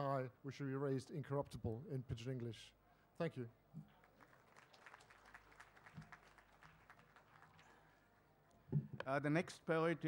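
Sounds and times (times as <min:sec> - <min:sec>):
faint audience applause: 0:03.9 - 0:08.2.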